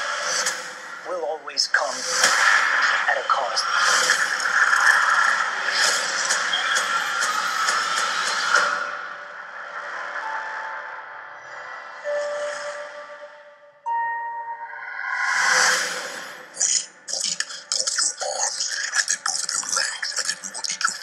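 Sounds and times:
sustained musical tones: 8.7s - 17.1s.

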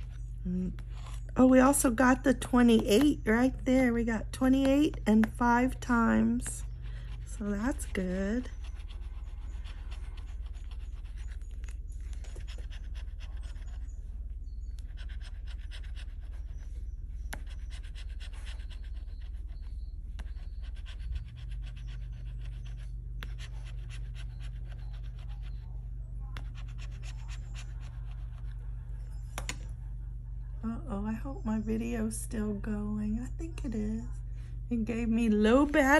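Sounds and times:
low hum: 0.0s - 35.9s.

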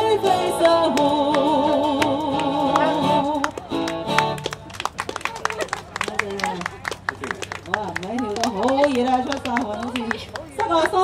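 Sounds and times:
guitar chords: 0.0s - 4.6s
small crowd clapping: 0.6s - 11.0s
voices: 5.0s - 11.0s.

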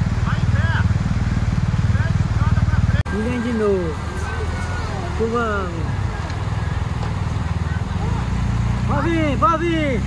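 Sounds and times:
motorcycle engines at low revs: 0.0s - 10.0s
voices calling out: 0.0s - 10.0s.

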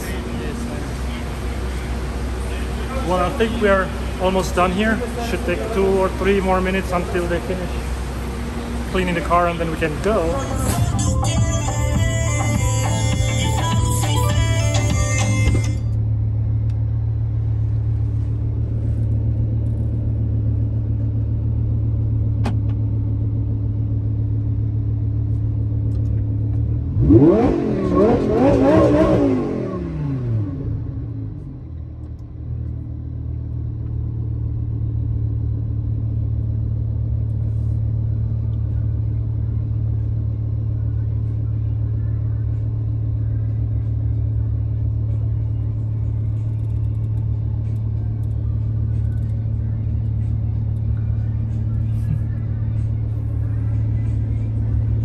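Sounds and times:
car engine idling and revving: 0.0s - 55.0s.

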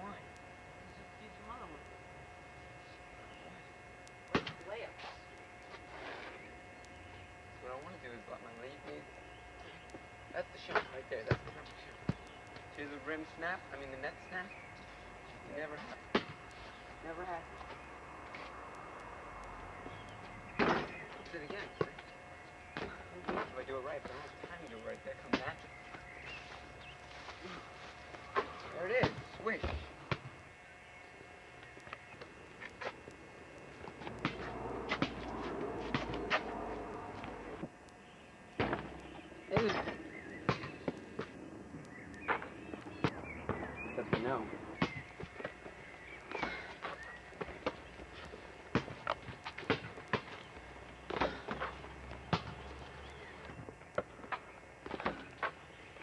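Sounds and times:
basketball bouncing: 34.0s - 36.6s, 48.7s - 50.4s
ball hitting backboard and rim: 38.6s - 39.0s
indistinct voices: 38.6s - 44.8s.

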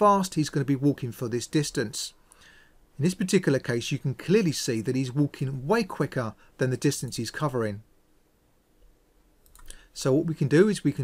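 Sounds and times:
faint computer mouse clicks: 9.4s - 9.8s.

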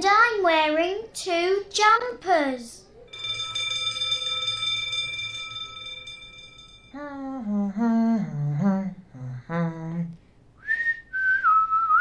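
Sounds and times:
electric bell ringing: 3.1s - 7.0s.

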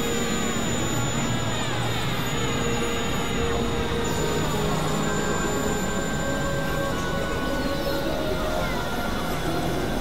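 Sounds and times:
noise drone music: 0.0s - 10.0s.

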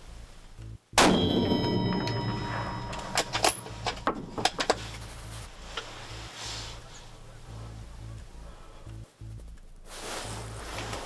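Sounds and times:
low music bed: 0.0s - 11.0s
loud metallic clang: 1.0s - 4.9s.

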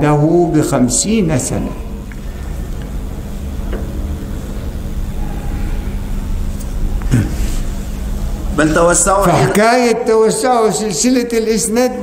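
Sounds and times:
room low rumble and hum: 0.0s - 12.0s.

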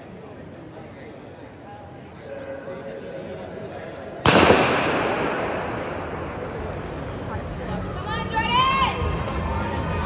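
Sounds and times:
starting gun shot with echo: 4.2s - 7.1s.

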